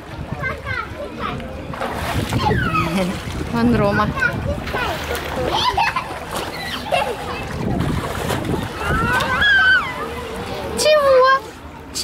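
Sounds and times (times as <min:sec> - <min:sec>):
children and adults talking: 0:00.0 - 0:12.0
water splashing: 0:00.6 - 0:12.0.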